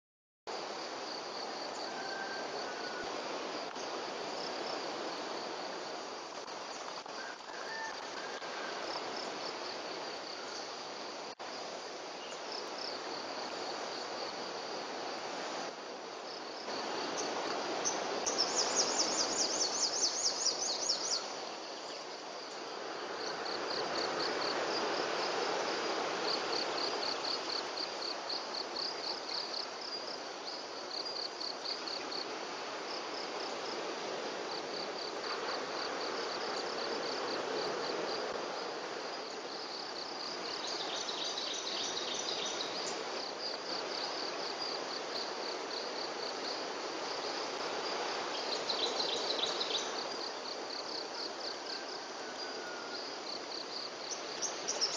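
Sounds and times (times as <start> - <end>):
insects chirping in high trills: 0.5 - 54.9
outdoor background hiss: 0.5 - 54.9.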